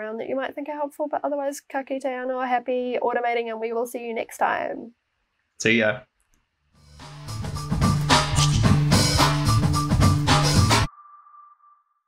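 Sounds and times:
music with steady beat: 6.8s - 10.9s
high ringing tone: 10.9s - 12.0s.

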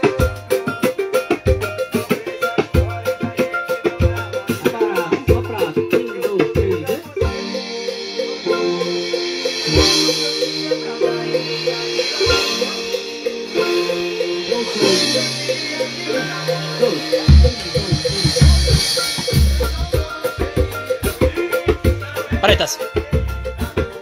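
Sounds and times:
music track with bass and beat: 0.0s - 24.0s
surdo bass drum hits: 17.3s - 22.0s.

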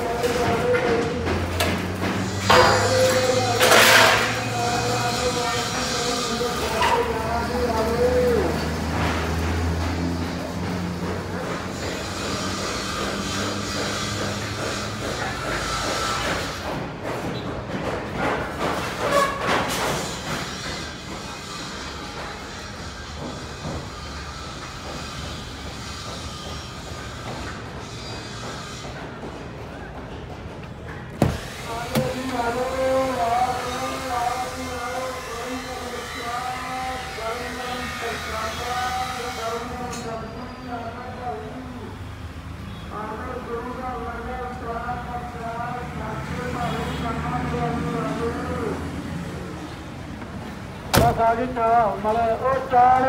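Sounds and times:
outdoor background noise: 0.0s - 53.0s.

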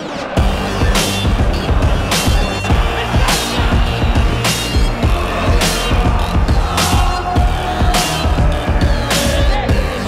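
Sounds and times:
electronic music with heavy beat: 0.0s - 10.0s.

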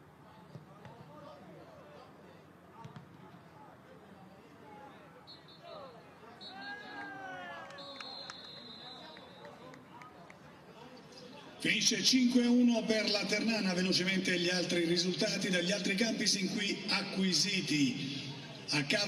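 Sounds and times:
referee's whistle blasts: 5.2s - 7.0s, 7.7s - 9.6s.

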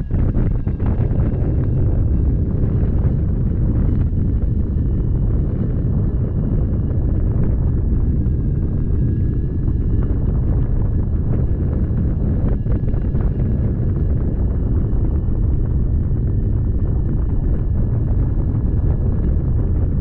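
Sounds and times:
faint high whine: 0.0s - 20.0s
heavy wind noise on microphone: 0.0s - 20.0s.

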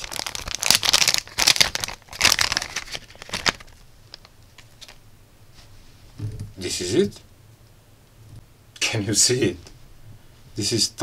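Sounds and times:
plastic bag crinkling: 0.0s - 5.0s.

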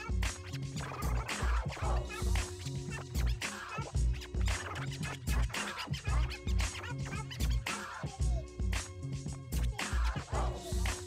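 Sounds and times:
record scratching chirps: 0.0s - 8.1s.

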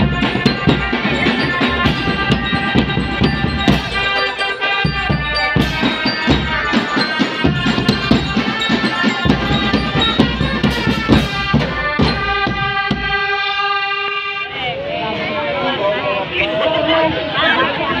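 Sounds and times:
drum band playing: 0.0s - 13.6s
melody notes: 0.0s - 13.8s
cymbals: 0.0s - 14.3s.

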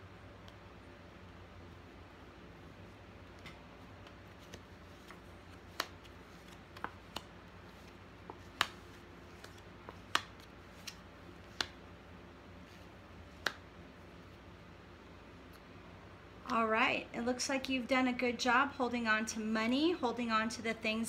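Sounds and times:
cards being dealt: 3.3s - 11.8s, 12.6s - 13.7s
sharp card snaps: 8.3s - 11.8s.

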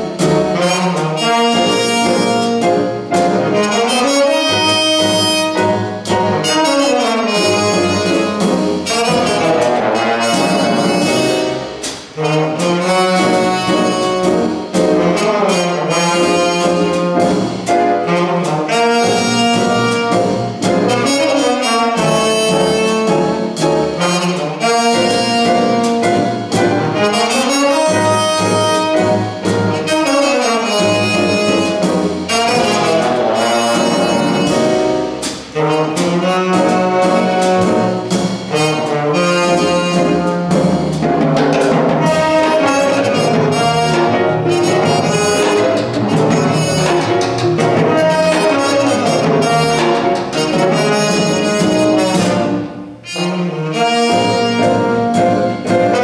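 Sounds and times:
drums with cymbal strikes: 0.0s - 56.0s
horn section harmonized notes: 0.0s - 56.0s
piano: 0.0s - 56.0s
trombone: 0.0s - 56.0s
trumpet: 0.0s - 56.0s
upright bass: 0.0s - 56.0s
tenor saxophone: 3.6s - 5.8s, 18.1s - 20.3s, 42.0s - 56.0s.

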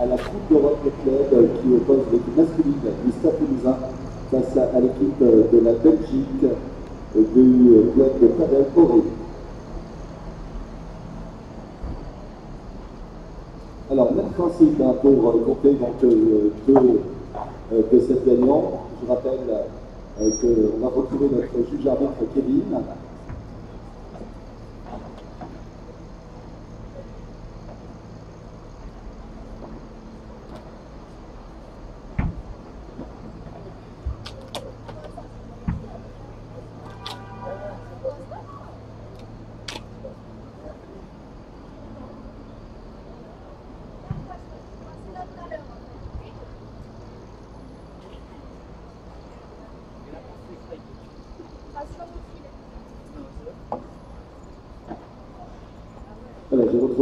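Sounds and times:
murmur of distant voices: 0.0s - 57.0s.

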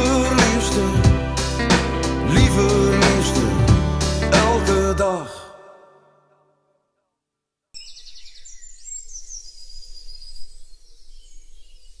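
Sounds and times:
song: 0.0s - 6.4s
small birds chirping: 7.8s - 12.0s.

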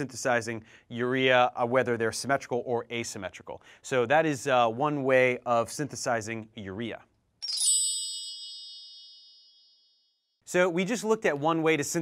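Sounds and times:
bright chime ringing: 7.4s - 10.3s.

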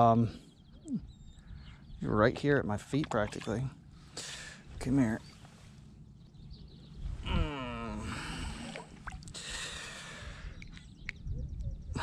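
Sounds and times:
faint outdoor background: 0.0s - 12.0s
man groaning with effort: 7.2s - 8.6s.

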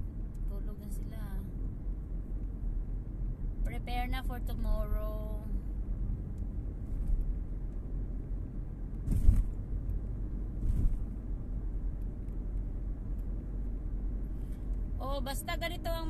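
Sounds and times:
car cabin engine and tyre rumble: 0.0s - 16.0s.

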